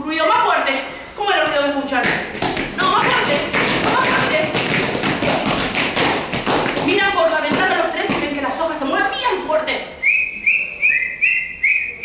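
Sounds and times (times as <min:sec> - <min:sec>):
small hands tapping quickly: 0:01.5 - 0:08.4.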